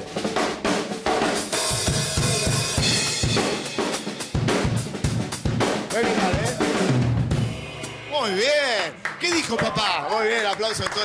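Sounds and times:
drum kit fill: 0.0s - 9.2s.

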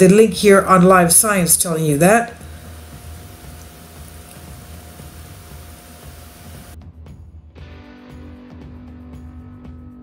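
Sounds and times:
steady hiss: 1.2s - 6.8s.

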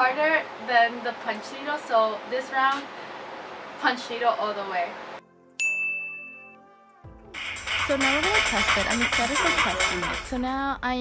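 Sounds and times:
bright chime ding: 5.6s - 6.6s.

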